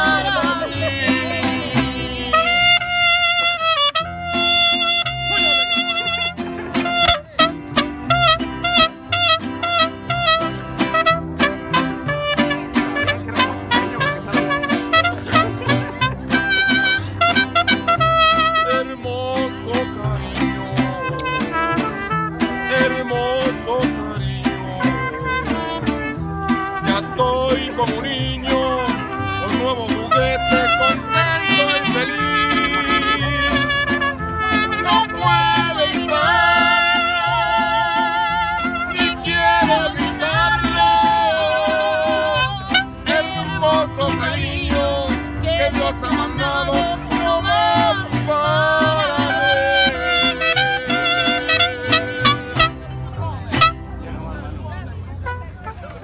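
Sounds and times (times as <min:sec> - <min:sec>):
mariachi band playing: 0:00.0 - 0:56.0
trumpets playing melody: 0:02.2 - 0:19.0, 0:20.9 - 0:23.7, 0:24.6 - 0:43.6, 0:46.0 - 0:54.0, 0:55.2 - 0:56.0.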